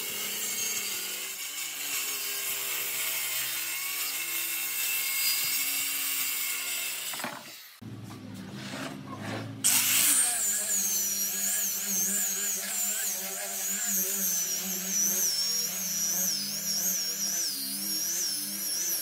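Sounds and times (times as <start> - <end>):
power sander whine on wood: 9.7 - 19.0.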